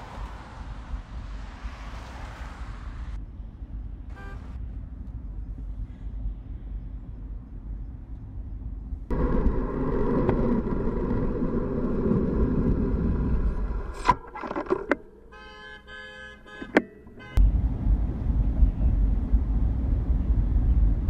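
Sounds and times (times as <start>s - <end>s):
low road rumble: 0.0s - 21.0s
car horn sounding: 4.1s - 4.6s, 15.2s - 17.4s.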